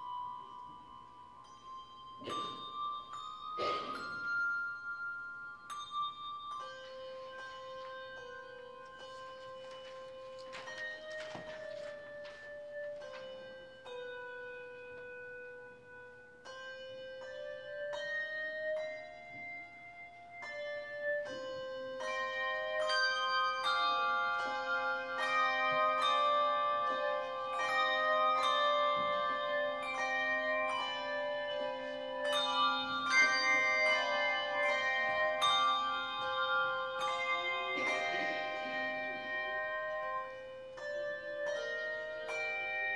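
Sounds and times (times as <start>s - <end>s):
handbell choir playing: 0.0s - 42.9s.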